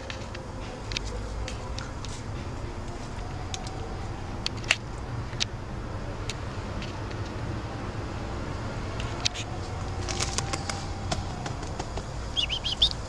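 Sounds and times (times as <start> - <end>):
distant road traffic rumble: 0.0 - 13.0.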